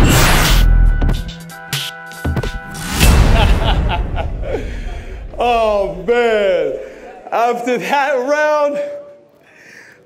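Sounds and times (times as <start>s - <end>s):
deep boom: 2.6s - 6.8s
crowd noise in a hall: 6.1s - 10.0s.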